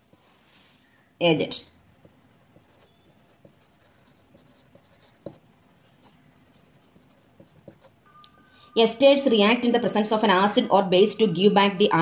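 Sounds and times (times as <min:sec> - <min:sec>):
marker pen scratching: 0:01.6 - 0:08.0.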